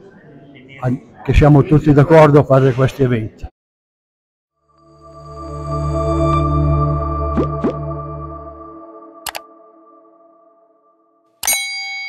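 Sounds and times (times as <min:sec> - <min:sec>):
ringing chord: 0:04.6 - 0:11.8
bell-like ding: 0:11.4 - 0:12.0.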